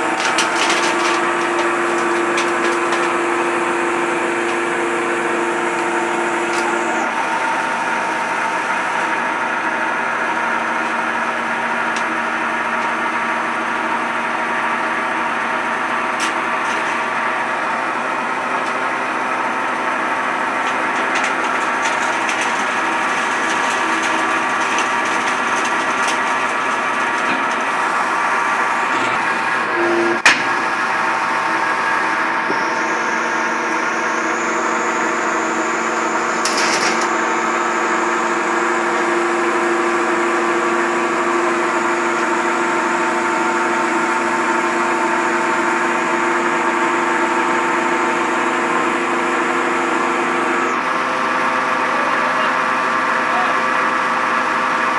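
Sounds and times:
baling press motor whining: 15.7s - 51.9s.

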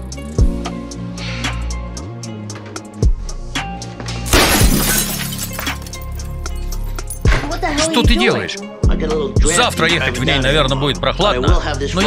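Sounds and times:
background music: 0.0s - 12.0s
windshield glass shattering: 4.3s - 7.2s.

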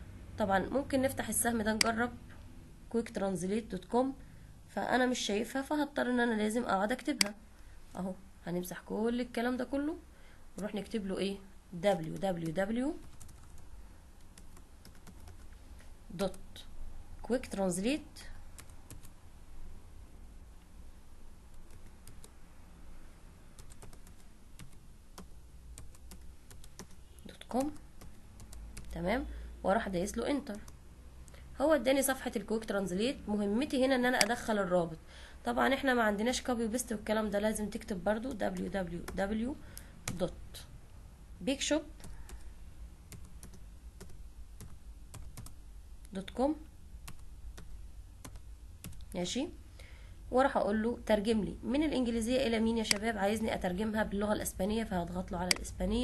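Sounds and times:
keyboard keys clicking: 43.1s - 45.6s.

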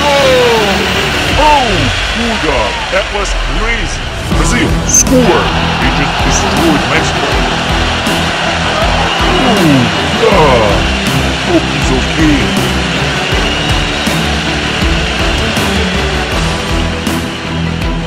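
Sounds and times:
energetic soundtrack music: 0.0s - 18.0s.

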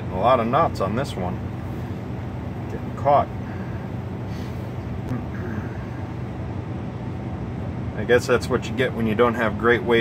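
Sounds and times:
low hum of truck cab: 0.0s - 10.0s.

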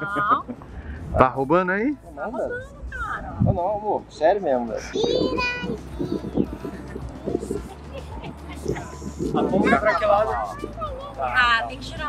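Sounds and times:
people talking: 4.7s - 12.0s.

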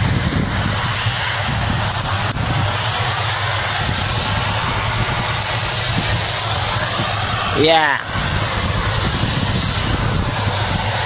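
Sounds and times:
engine drone: 0.0s - 11.0s
loud rushing noise: 0.0s - 11.0s.

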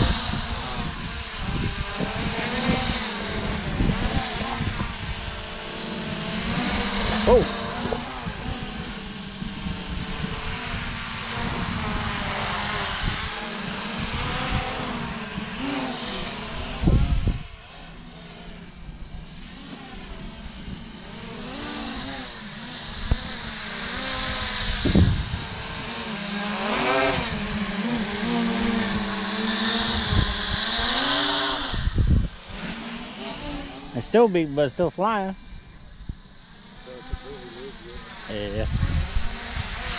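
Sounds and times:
wind buffeting microphone: 0.0s - 17.6s, 20.0s - 34.6s, 38.3s - 39.9s
drone propellers buzzing: 0.0s - 39.9s.

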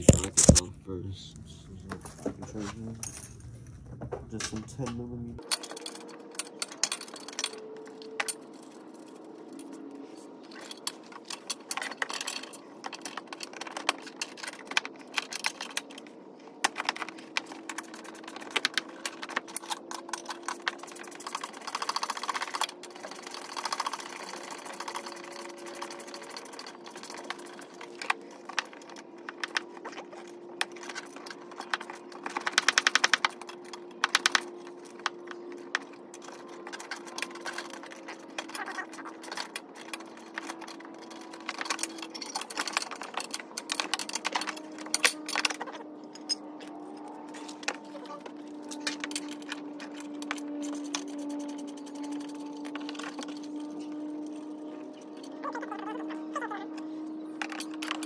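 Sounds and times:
faint steady drone: 0.0s - 58.0s
metal tools clinking: 4.4s - 58.0s.

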